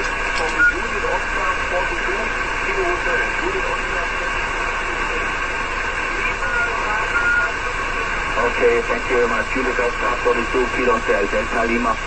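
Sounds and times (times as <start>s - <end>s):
radio receiver hiss: 0.0s - 12.0s
weak radio voice: 0.0s - 12.0s.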